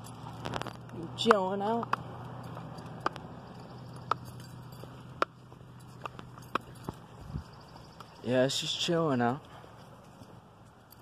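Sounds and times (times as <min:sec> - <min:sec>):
low steady hum: 0:00.0 - 0:11.0
footsteps on concrete: 0:00.4 - 0:08.2.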